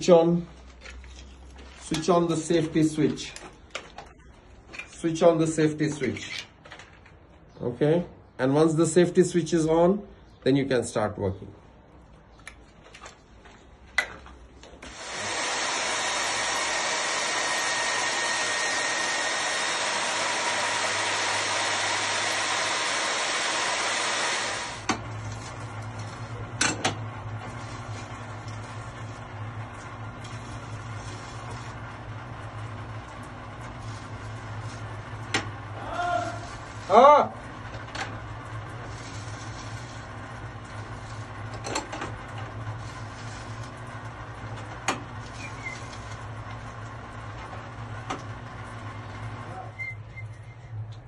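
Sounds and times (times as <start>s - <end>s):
low drilling hum: 14.5s - 51.0s
core drill motor running: 14.8s - 49.6s.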